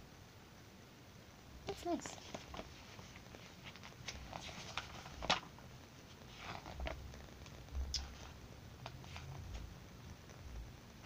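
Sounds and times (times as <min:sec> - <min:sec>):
magazine pages rustling: 0:01.9 - 0:09.7.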